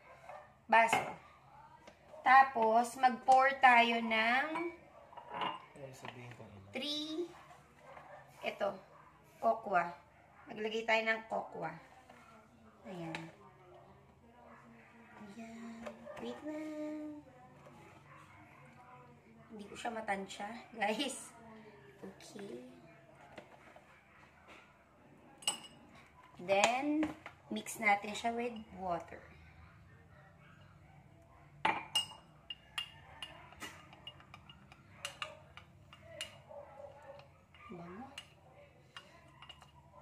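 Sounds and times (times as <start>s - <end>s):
metal spoon clinking glass: 4.5s - 5.7s, 25.4s - 25.8s, 31.6s - 36.5s, 38.1s - 39.9s.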